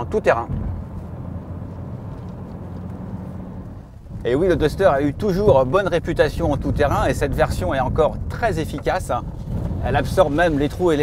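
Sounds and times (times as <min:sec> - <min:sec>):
car engine running low: 0:00.0 - 0:11.0.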